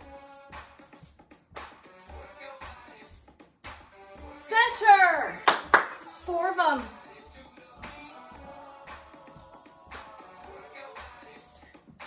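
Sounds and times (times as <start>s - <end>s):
upbeat workout music: 0.0s - 12.0s
hand claps: 5.4s - 6.2s.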